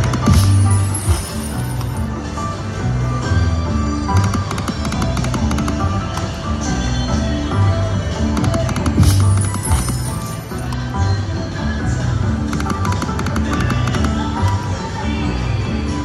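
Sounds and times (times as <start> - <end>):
slot machine game music: 0.0 - 2.2, 9.0 - 10.7.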